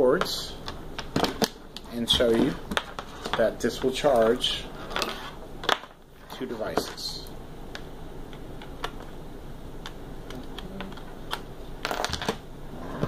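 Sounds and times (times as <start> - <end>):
low room noise: 0.0 - 13.0.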